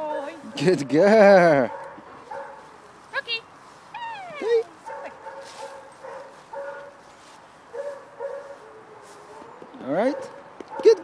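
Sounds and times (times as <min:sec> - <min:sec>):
dog whining: 0:03.9 - 0:04.7.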